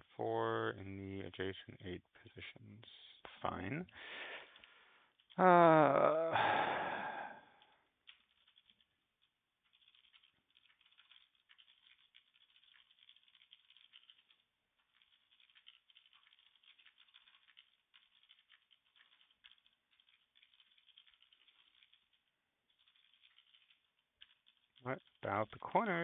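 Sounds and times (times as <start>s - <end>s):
computer keyboard typing: 4.4s - 26.0s.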